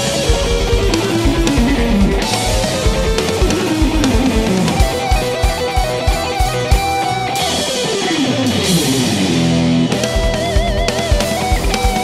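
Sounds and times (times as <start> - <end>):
electric guitar descending run: 0.0 - 12.0.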